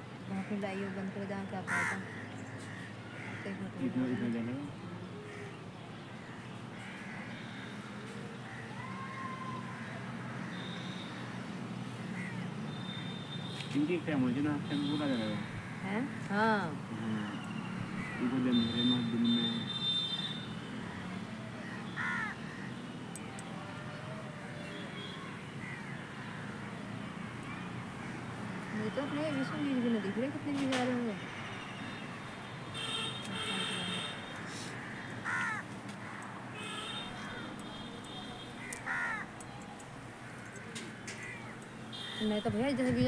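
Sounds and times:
steady background noise: 0.0 - 43.0
crows cawing: 0.4 - 4.4, 6.2 - 7.9, 8.5 - 11.1, 12.0 - 12.5, 14.8 - 16.6, 18.0 - 18.8, 20.7 - 22.8, 24.3 - 30.6, 32.8 - 39.4, 40.2 - 42.2.

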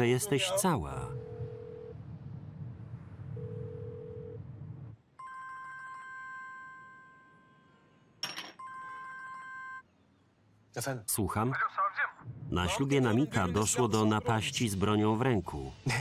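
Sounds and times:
phone ringback tone: 1.1 - 2.0, 3.4 - 4.4, 5.2 - 7.8, 8.6 - 9.8
mobile phone ringtone: 3.4 - 4.4, 5.2 - 7.7, 8.6 - 9.8.

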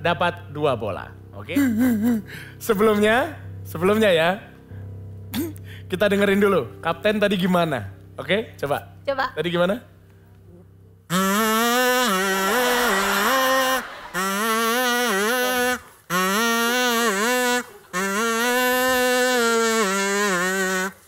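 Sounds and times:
toy trumpet playing tune: 11.1 - 21.0.

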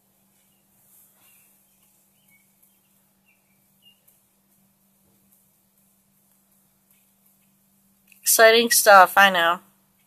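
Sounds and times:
steady low hum: 0.0 - 10.0
faint high chirps: 0.3 - 4.3.

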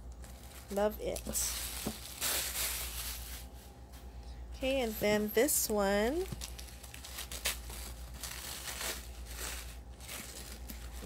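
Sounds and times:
tissue paper crinkling and tearing: 0.2 - 3.7, 6.1 - 11.0.

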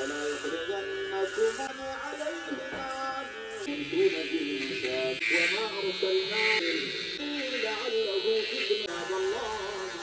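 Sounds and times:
hair trimmer buzzing: 0.0 - 10.0.

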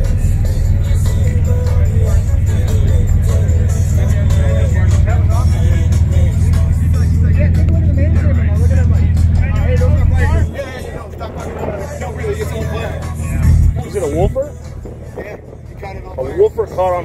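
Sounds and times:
subwoofers playing deep bass tone: 0.0 - 17.0
voices: 0.0 - 17.0.

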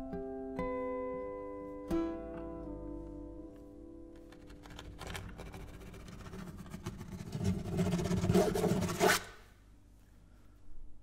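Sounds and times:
scraping on acoustic guitar: 5.0 - 9.4.

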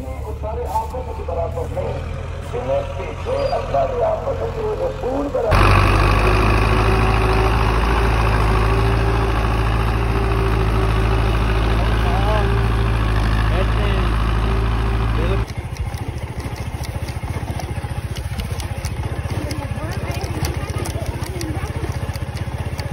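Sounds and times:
tractor diesel engine under load: 0.0 - 22.9
motorcycle engine ticking: 5.5 - 22.9.

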